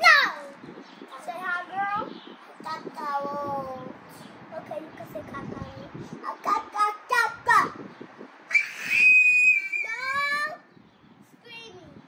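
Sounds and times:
child's voice: 0.0s - 7.9s, 9.8s - 10.7s, 11.3s - 12.0s
high steady whistle: 8.5s - 10.0s.

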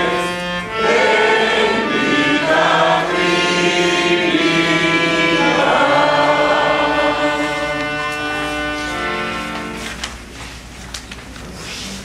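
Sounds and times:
group singing a hymn: 0.0s - 9.0s.

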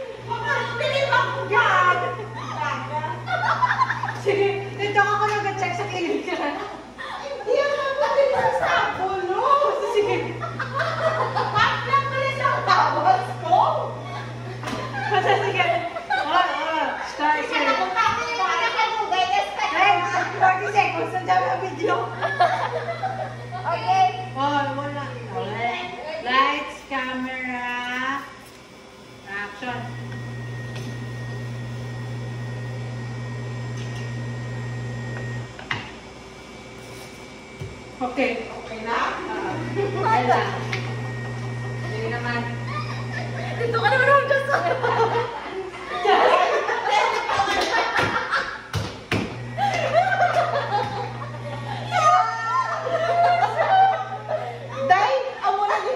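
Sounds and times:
people talking: 0.0s - 28.4s, 29.3s - 31.0s, 38.0s - 48.2s, 49.6s - 55.9s
electric lab machine humming: 0.0s - 55.9s.

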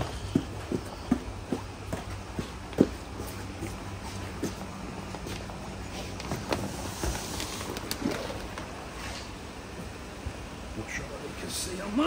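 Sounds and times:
footsteps on paving: 0.0s - 7.4s
steady low hum: 0.0s - 12.0s
plastic bag handled: 6.0s - 8.8s.

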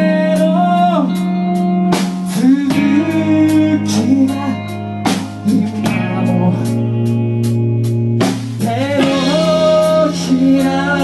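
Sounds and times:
man singing: 0.0s - 11.0s
rock band playing live: 0.0s - 11.0s.

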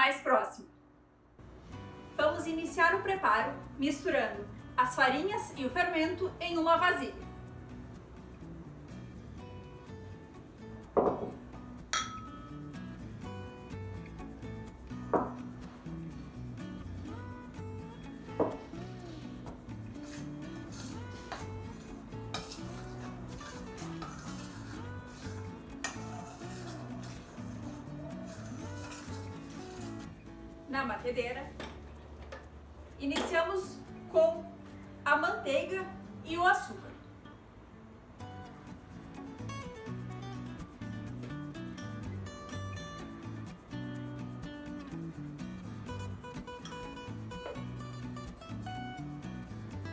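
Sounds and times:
metal spoon clinking in bowl: 11.9s - 12.5s.

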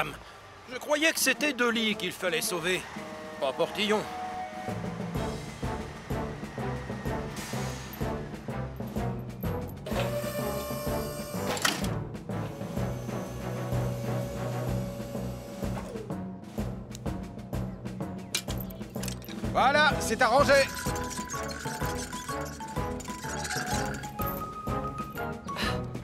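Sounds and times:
dramatic cartoon music: 1.3s - 26.0s
timpani-like drum strokes: 4.7s - 9.4s.

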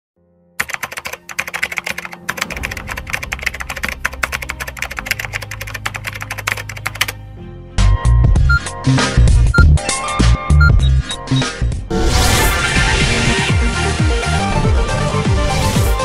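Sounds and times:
background music: 0.2s - 16.0s
rapid keyboard typing: 0.6s - 7.2s.

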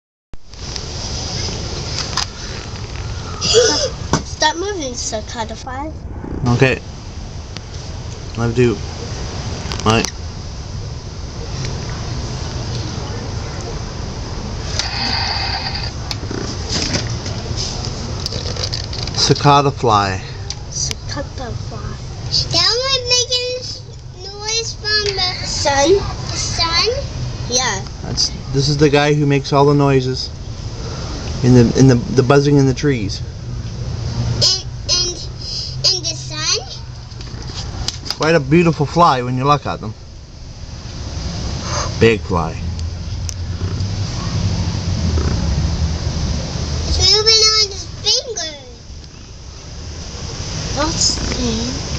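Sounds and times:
low background rumble: 0.6s - 28.6s
cicada buzzing: 14.5s - 16.7s, 42.9s - 51.9s.

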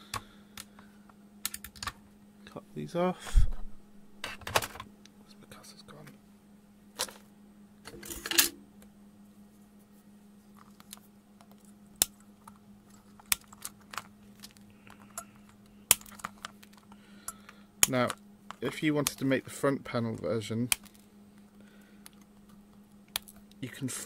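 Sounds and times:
faint steady hum: 0.0s - 24.0s.

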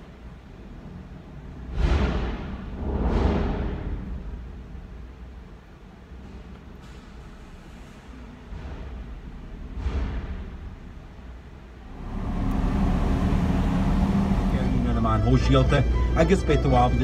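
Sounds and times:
car interior rumble: 11.8s - 17.0s.

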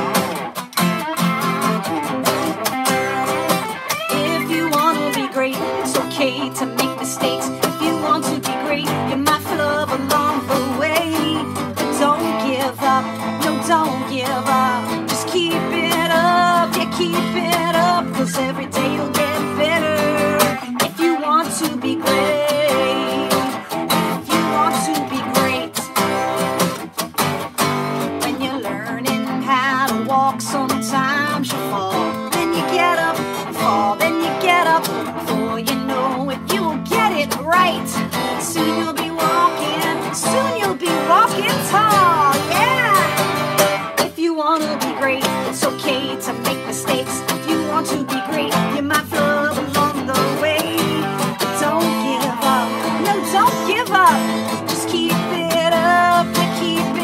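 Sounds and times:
electric guitar: 0.0s - 57.0s
strummed acoustic guitar: 0.0s - 57.0s
woman singing: 0.0s - 57.0s.

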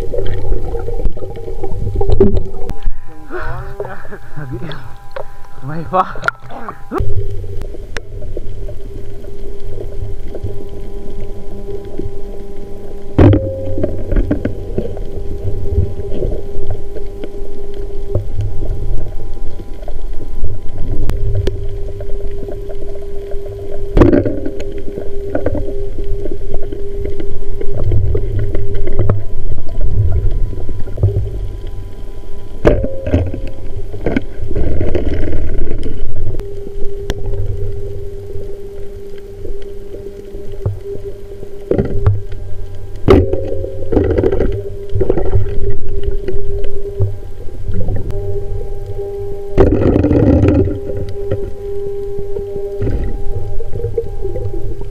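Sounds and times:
steady hum: 0.0s - 54.9s
underwater water rumble: 0.0s - 54.9s.

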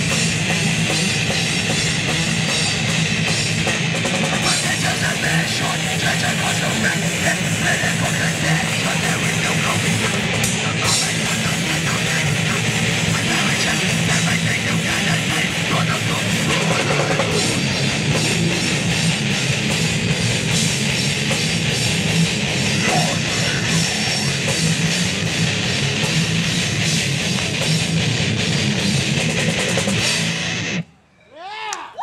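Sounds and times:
drum kit: 0.0s - 30.8s
bass guitar: 0.0s - 31.0s
distorted electric guitars: 0.0s - 31.0s.

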